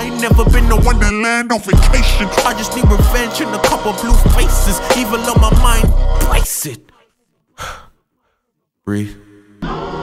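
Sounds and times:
backing music: 0:00.0 - 0:06.5
man breathing in: 0:07.6 - 0:08.5
man speaking: 0:08.8 - 0:09.3.

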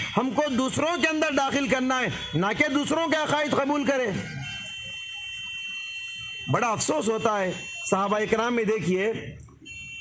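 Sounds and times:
loudspeaker feedback whistle: 0:00.0 - 0:08.9, 0:09.6 - 0:10.0.

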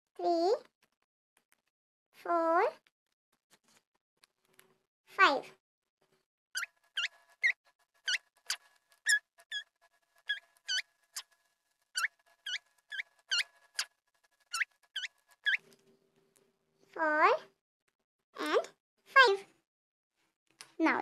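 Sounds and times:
high-pitched squeaky chirps: 0:06.6 - 0:15.6.

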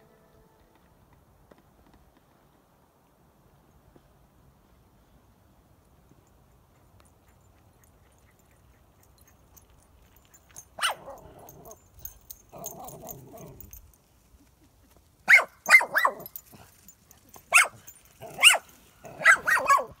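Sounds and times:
small dog barking: 0:10.8 - 0:11.8, 0:15.2 - 0:16.6, 0:17.4 - 0:20.0.

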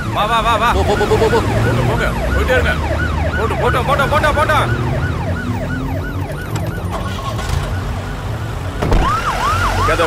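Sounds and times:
emergency siren yelping: 0:00.0 - 0:10.0
thump: 0:08.8 - 0:09.1.

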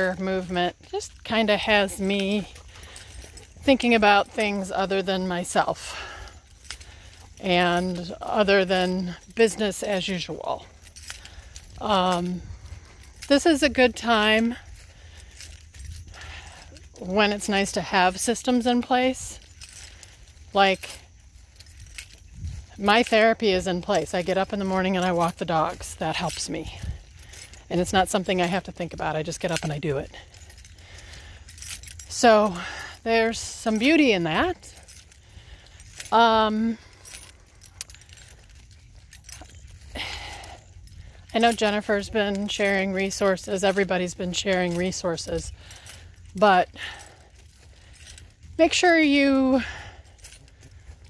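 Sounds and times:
low microphone rumble while walking: 0:00.0 - 0:51.0
small metal pieces clinking: 0:05.7 - 0:51.0.

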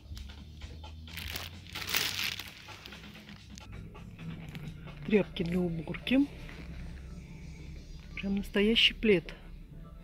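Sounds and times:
faint background music: 0:00.0 - 0:10.0
plastic bag crinkling: 0:01.1 - 0:03.6.

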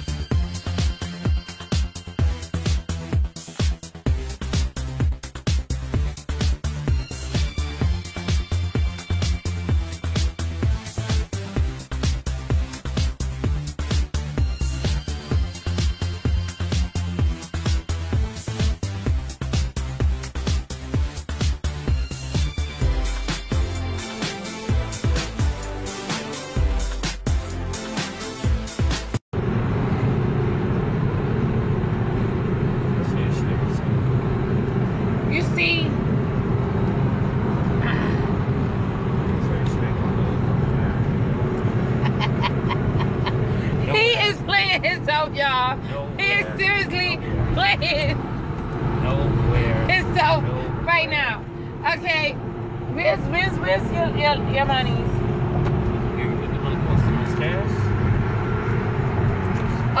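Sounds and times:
car road and engine noise: 0:00.0 - 1:00.0
person speaking: 0:43.7 - 0:45.2, 0:45.9 - 0:48.1.

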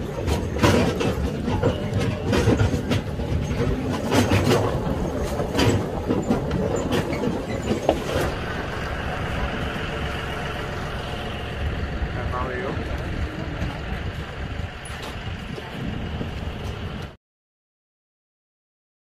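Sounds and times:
wagon knocks and rattles: 0:00.0 - 0:09.3
tractor engine rumble: 0:00.0 - 0:17.2.

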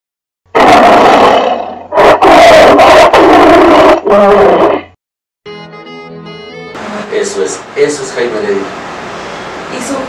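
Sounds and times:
big cat roaring: 0:00.5 - 0:04.9.

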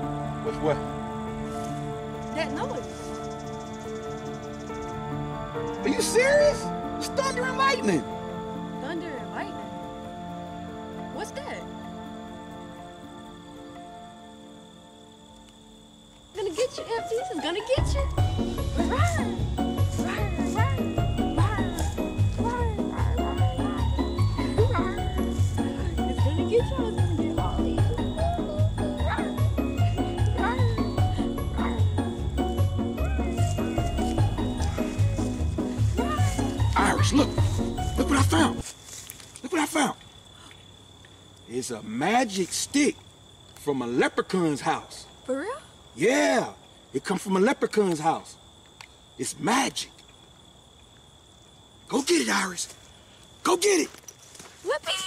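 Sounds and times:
steady bass beat: 0:17.8 - 0:38.6
high-pitched tone: 0:18.8 - 0:38.6
man speaking: 0:36.7 - 0:38.6, 0:51.9 - 0:52.7, 0:53.4 - 0:54.0.

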